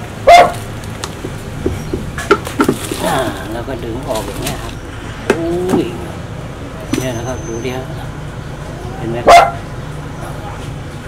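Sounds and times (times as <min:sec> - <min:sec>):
dog barking: 0:00.2 - 0:00.6, 0:09.2 - 0:09.7.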